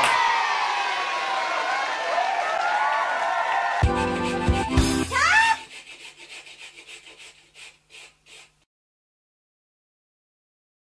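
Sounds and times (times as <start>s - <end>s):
rasping scraping strokes: 4.1s - 8.7s.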